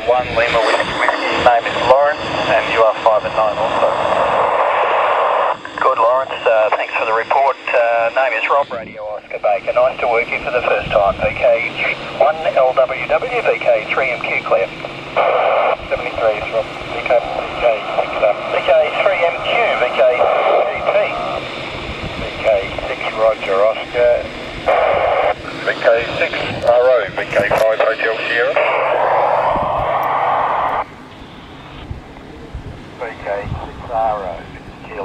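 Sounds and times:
radio hiss: 0:00.0 - 0:35.0
voices over radio speaker: 0:00.0 - 0:35.0.

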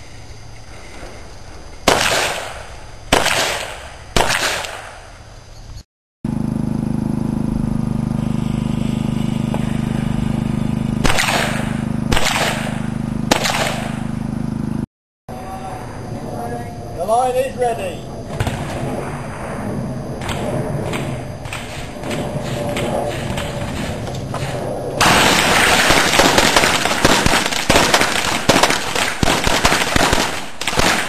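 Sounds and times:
steady low hum: 0:00.0 - 0:30.6
pistol shots: 0:01.9 - 0:05.1, 0:11.0 - 0:14.0, 0:25.0 - 0:31.0.

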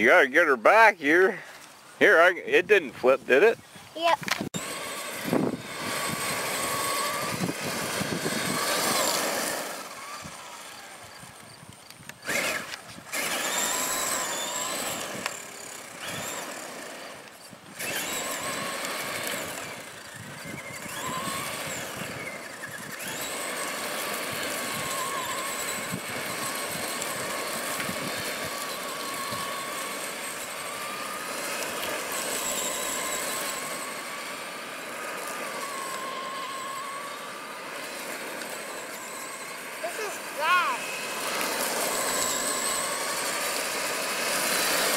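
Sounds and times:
electric motor whining: 0:00.0 - 0:44.9.

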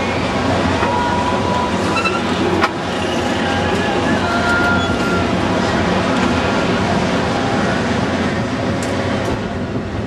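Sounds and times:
faint fairground sounds: 0:00.0 - 0:10.0
wind buffeting microphone: 0:05.4 - 0:10.0.

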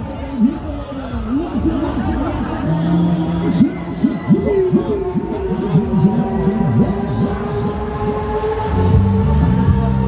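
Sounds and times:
stepped bass beat: 0:00.0 - 0:10.0.

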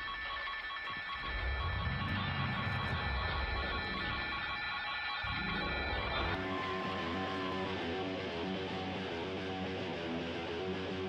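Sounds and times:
held rock band chord: 0:05.2 - 0:11.0.

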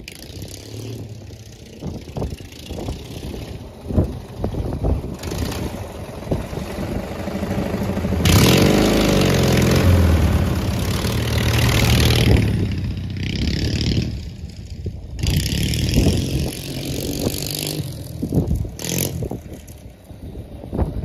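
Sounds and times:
garden tractor engine driving past: 0:00.0 - 0:19.8.

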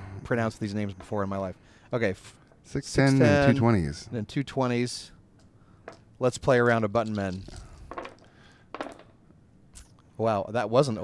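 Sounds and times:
plastic dice clattering on table: 0:07.0 - 0:09.2.

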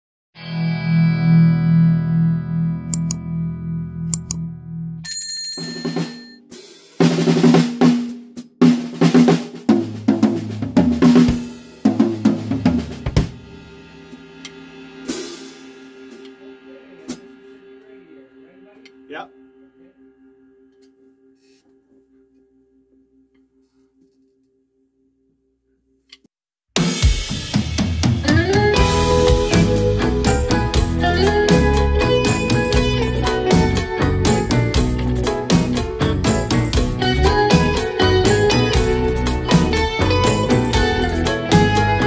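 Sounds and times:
drum-kit fills: 0:05.7 - 0:17.6, 0:26.8 - 0:42.0
blues-rock band music: 0:27.0 - 0:42.0.

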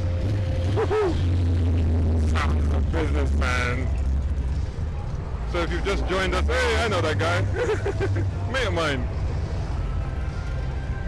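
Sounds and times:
car engines rumbling past slowly: 0:00.0 - 0:11.0.

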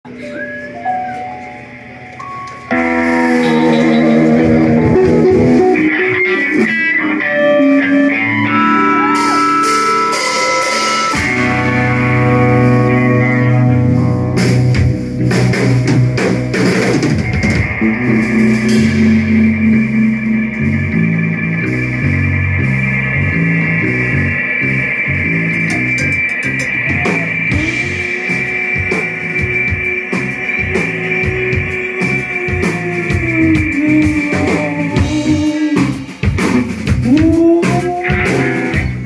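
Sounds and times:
rock band playing live: 0:00.1 - 0:39.0
electric guitar held notes: 0:00.6 - 0:39.0
low bass line: 0:02.7 - 0:06.2, 0:11.3 - 0:39.0.

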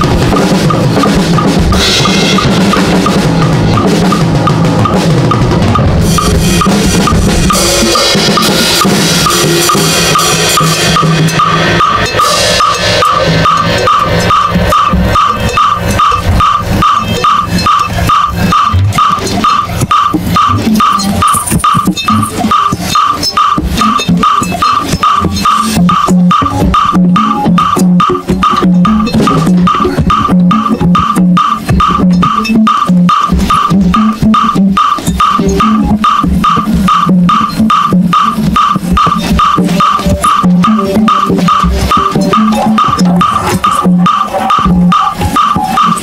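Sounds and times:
crashing cymbals: 0:00.0 - 0:27.8
drum kit played fast: 0:00.0 - 0:46.0
high metronome tick: 0:00.0 - 0:46.0.

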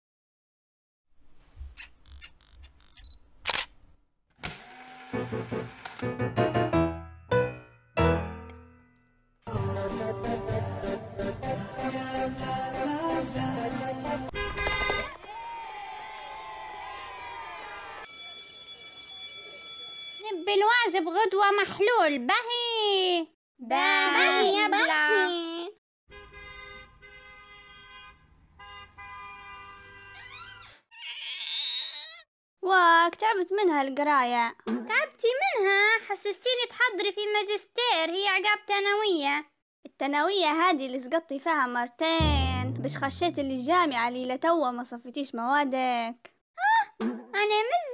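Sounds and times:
camera shutter clicks: 0:02.4 - 0:03.8, 0:04.4 - 0:06.1
loud camera shutter click: 0:03.4 - 0:03.7, 0:04.4 - 0:06.1
car horn honking: 0:14.3 - 0:15.1, 0:26.1 - 0:30.2.

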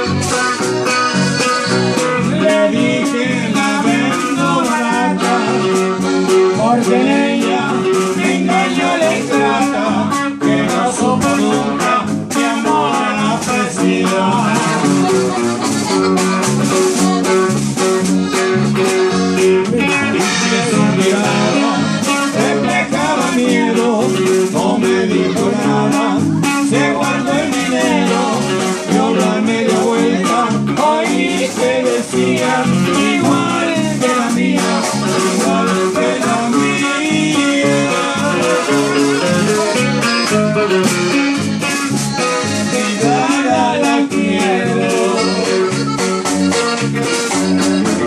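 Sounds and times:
button accordion melody: 0:00.0 - 0:48.0
electric bass: 0:00.0 - 0:48.0
steady drum beat: 0:00.0 - 0:48.0
strummed twelve-string guitar: 0:00.0 - 0:48.0.

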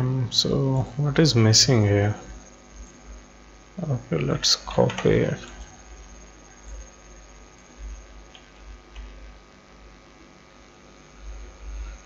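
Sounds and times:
electrical mains hum: 0:00.0 - 0:12.0
faint clicks: 0:08.3 - 0:09.2.

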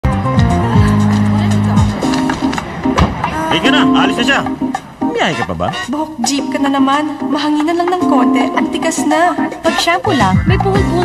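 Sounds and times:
van engine: 0:00.0 - 0:05.1
background music: 0:00.0 - 0:11.0.

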